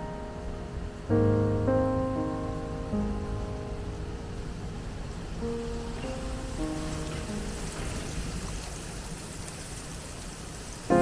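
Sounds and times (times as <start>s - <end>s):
loud piano chord: 0.0s - 8.0s
soft background music: 0.0s - 8.9s
water running in a fountain: 5.0s - 11.0s.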